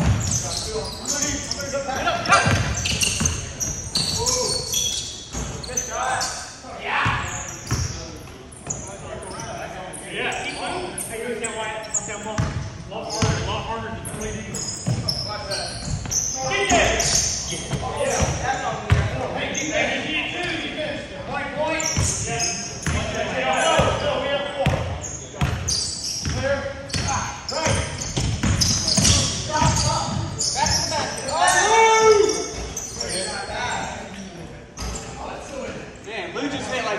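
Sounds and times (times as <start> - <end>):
players calling out: 0.0 - 35.5
basketball bouncing on hardwood: 28.2 - 29.8.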